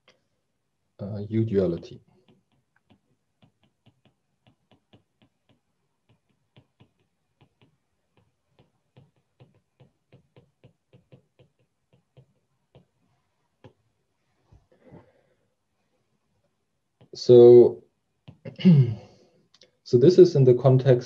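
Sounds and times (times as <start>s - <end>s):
stylus tapping on tablet screen: 2.1s - 14.0s, 18.2s - 18.5s.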